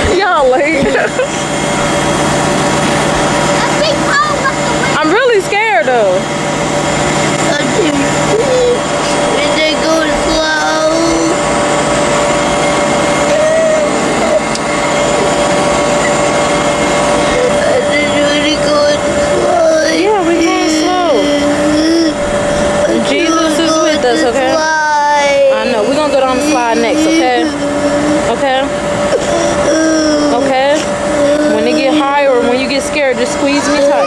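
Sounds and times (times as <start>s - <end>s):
people's voices: 0.0s - 6.4s, 7.1s - 11.5s, 13.1s - 34.0s
ride machinery humming: 0.0s - 34.0s.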